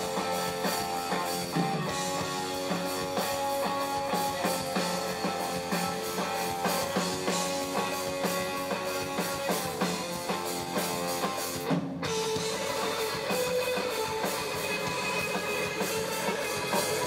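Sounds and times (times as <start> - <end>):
drum kit: 0.0 - 17.0
electric guitar: 0.0 - 17.0.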